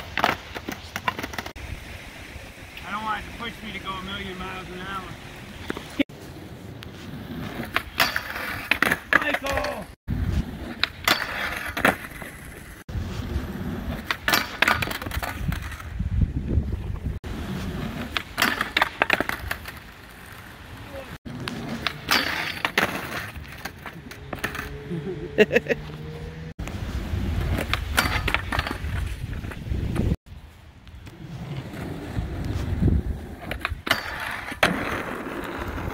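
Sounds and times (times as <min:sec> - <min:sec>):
skateboard clacking on ground: 0:00.0 - 0:01.6, 0:06.8 - 0:09.9, 0:10.5 - 0:12.8, 0:13.8 - 0:15.9, 0:17.9 - 0:24.7, 0:27.4 - 0:30.1, 0:31.0 - 0:35.9
skateboard wheels rolling on concrete: 0:00.0 - 0:35.9.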